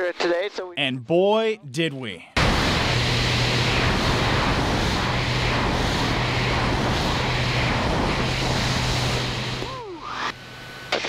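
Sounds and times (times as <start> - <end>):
plane engine and propeller drone: 2.4 - 11.0
wind rush: 2.5 - 9.6.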